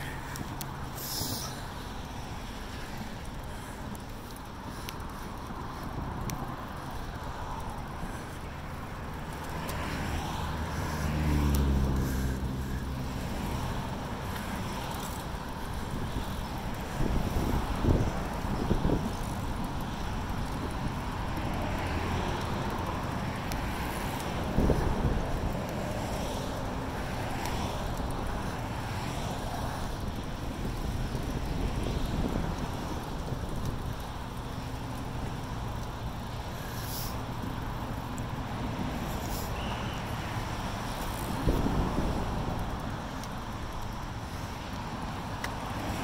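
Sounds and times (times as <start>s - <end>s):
bicycle rolling noise: 0.0s - 46.0s
wind: 0.0s - 46.0s
vehicle engine passing: 9.8s - 13.8s.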